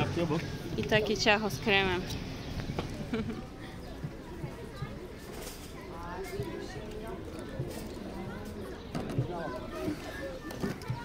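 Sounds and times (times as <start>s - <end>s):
quiet indistinct talk: 0.3s - 11.0s.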